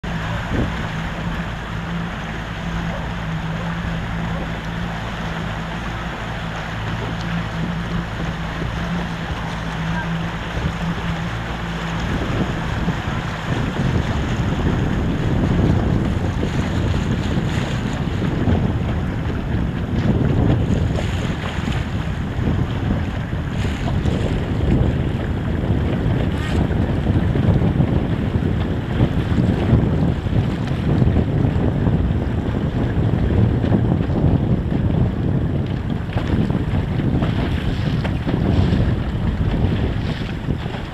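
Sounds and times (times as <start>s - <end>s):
water splashing against boat hull: 0.0s - 40.9s
wind buffeting microphone: 0.0s - 40.9s.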